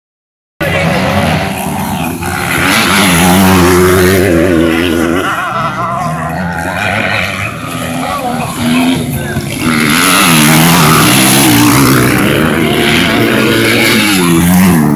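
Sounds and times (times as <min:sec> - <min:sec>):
motorcycle engines revving: 0:00.6 - 0:14.9.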